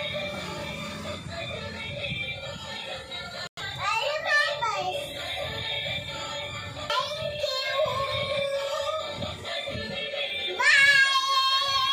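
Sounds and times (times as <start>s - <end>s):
toy playing electronic song: 0.0s - 3.8s, 4.9s - 10.7s.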